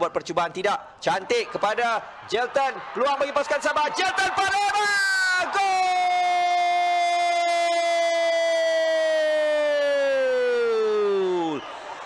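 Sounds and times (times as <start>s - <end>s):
commentator shouting: 1.1s - 11.5s.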